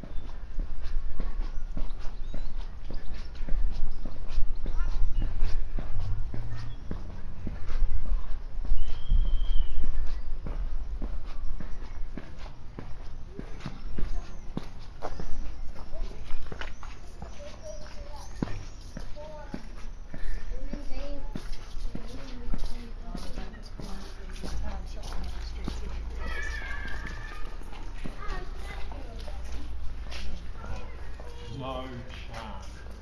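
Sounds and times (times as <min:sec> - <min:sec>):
footsteps on hard pavement: 0:00.0 - 0:33.0
people talking in background: 0:00.0 - 0:33.0.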